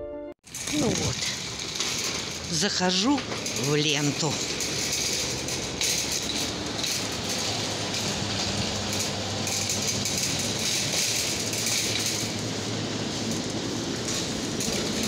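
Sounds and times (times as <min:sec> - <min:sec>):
shopping cart rattling: 0:00.5 - 0:15.0.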